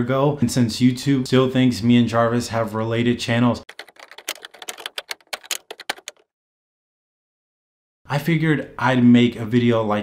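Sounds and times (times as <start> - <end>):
fast typing on keyboard: 3.7 - 6.2.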